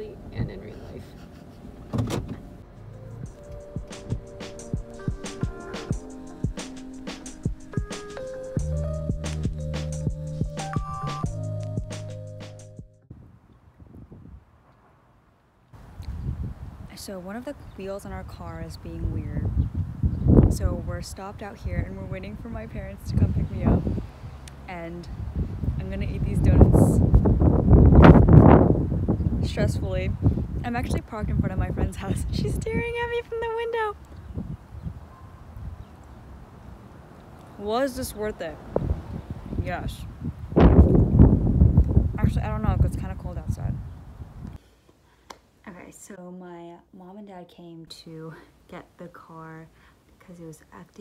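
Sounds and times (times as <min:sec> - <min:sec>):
wind buffeting microphone: 0:13.1 - 0:14.6, 0:15.8 - 0:36.0, 0:37.6 - 0:44.6.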